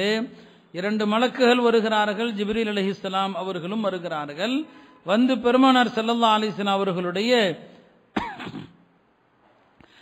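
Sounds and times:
man clearing his throat: 8.1s - 8.9s.

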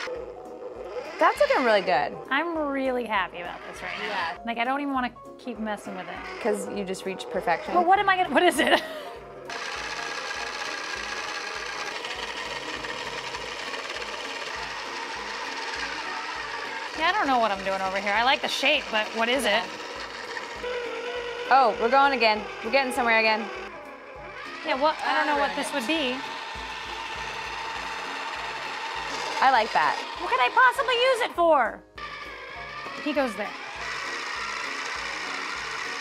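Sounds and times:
small electric motors whirring: 0.0s - 31.4s, 32.0s - 36.0s.

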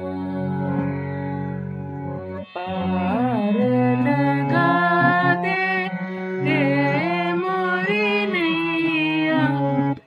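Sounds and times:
boy singing: 2.4s - 10.0s.

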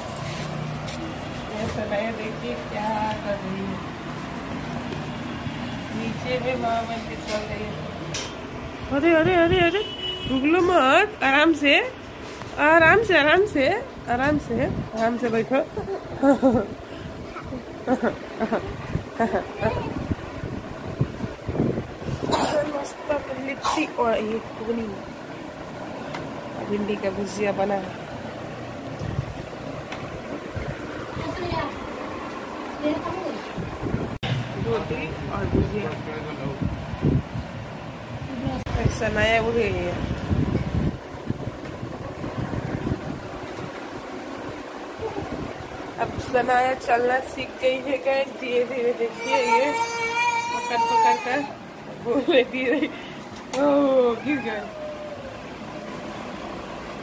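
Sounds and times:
wind rumbling on microphone: 18.5s - 22.4s, 29.0s - 31.9s, 33.1s - 35.8s, 36.4s - 46.8s.

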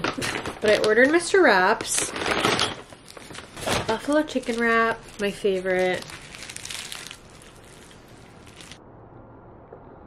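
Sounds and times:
foil wrapper crackling: 0.0s - 8.8s
biting and chewing: 4.4s - 8.8s.

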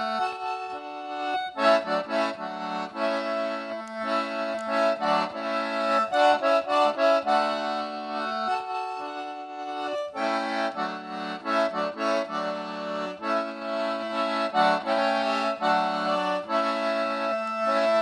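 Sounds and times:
concertina folk melody: 0.0s - 18.0s.

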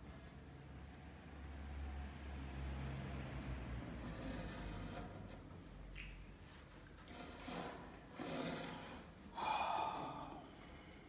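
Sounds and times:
person breathing audibly: 9.3s - 11.0s.

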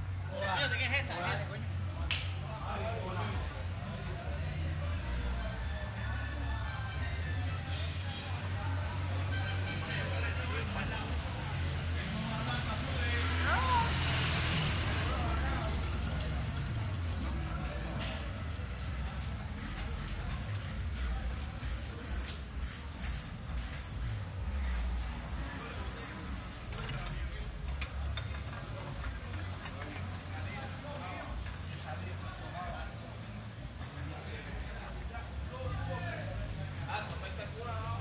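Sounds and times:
people talking at a distance: 0.0s - 38.0s
people's voices: 0.0s - 38.0s.

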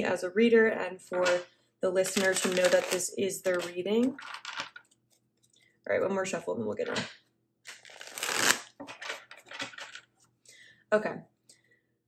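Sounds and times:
cards being riffle-shuffled: 2.1s - 4.8s, 7.7s - 10.0s.

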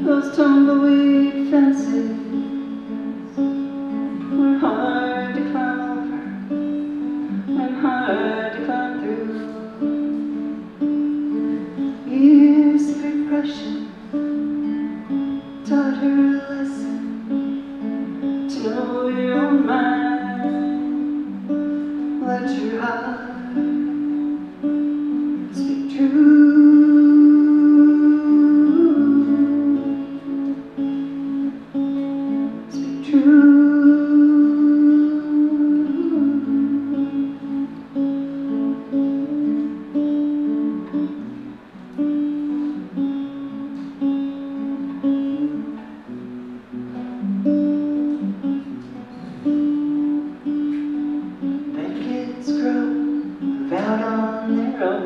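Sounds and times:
solo acoustic guitar: 0.0s - 55.0s.

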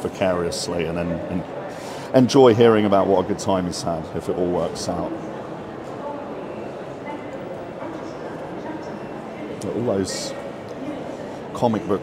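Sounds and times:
murmur of distant voices: 0.0s - 12.0s.

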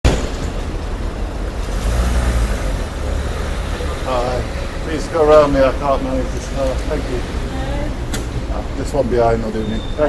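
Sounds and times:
traffic: 0.0s - 10.0s
van engine rumble: 0.0s - 10.0s.

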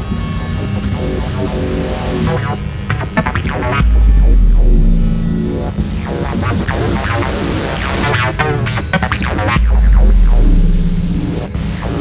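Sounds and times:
held synthesizer notes: 0.6s - 12.0s
heavy low bass rumble: 2.4s - 6.4s, 9.6s - 12.0s.

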